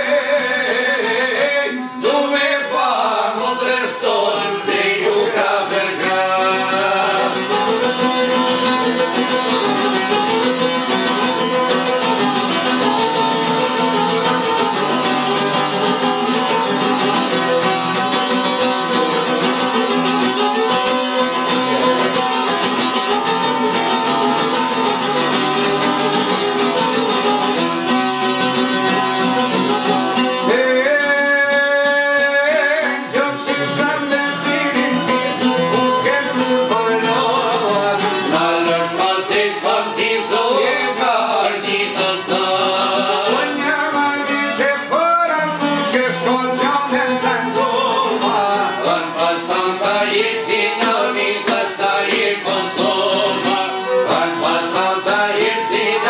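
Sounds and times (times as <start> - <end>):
plucked lute melody: 0.0 - 56.0.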